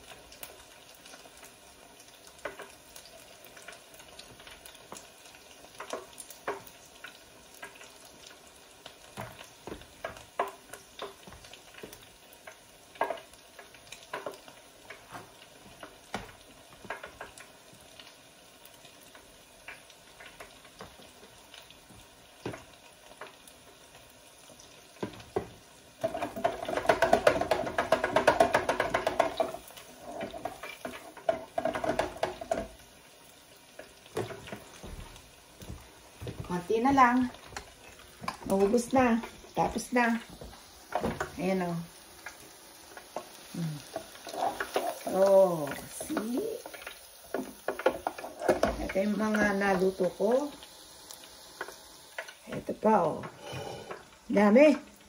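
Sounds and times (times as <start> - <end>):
oil sizzling in deep fryer: 0.0 - 55.0.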